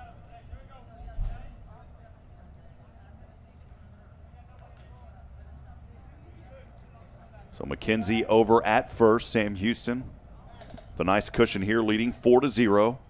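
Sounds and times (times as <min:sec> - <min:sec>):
low ballpark hum: 0:00.0 - 0:13.0.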